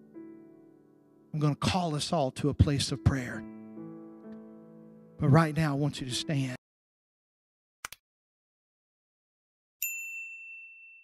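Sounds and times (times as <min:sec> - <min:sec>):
notification bell ding: 0:09.8 - 0:11.0.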